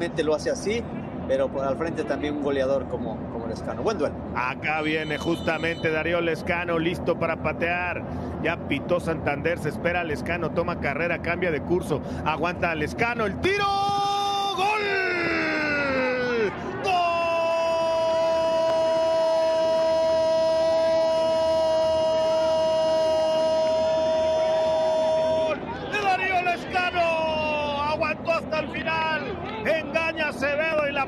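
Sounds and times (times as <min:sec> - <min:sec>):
excited shouting: 0:13.4 - 0:28.0.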